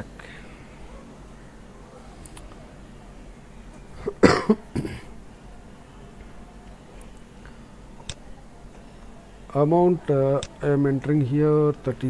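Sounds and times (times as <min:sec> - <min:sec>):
man coughing: 0:04.0 - 0:05.1.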